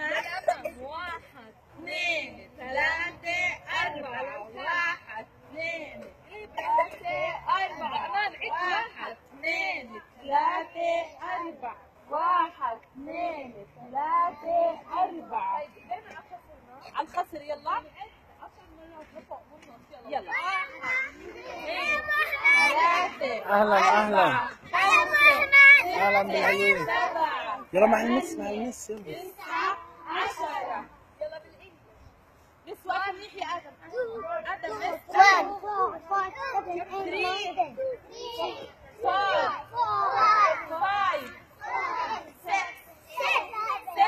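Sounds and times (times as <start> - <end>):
young children calling and chattering: 0.0 - 44.0.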